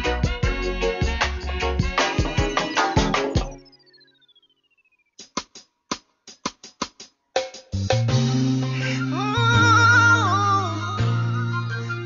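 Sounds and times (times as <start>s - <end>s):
drum strikes: 0.2s - 3.6s, 5.2s - 8.6s.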